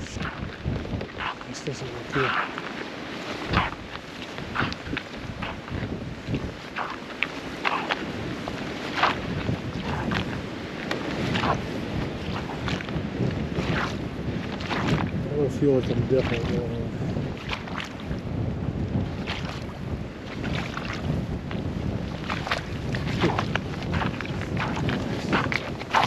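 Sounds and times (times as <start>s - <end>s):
boots splashing through meltwater: 0.0s - 18.2s, 19.2s - 26.0s
wind on microphone: 0.0s - 26.0s.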